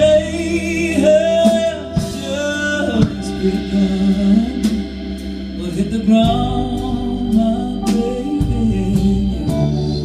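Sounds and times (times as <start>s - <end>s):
bass notes: 0.0s - 10.0s
guitar: 0.0s - 10.0s
person singing: 0.0s - 10.0s
sustained organ chords: 0.0s - 10.0s.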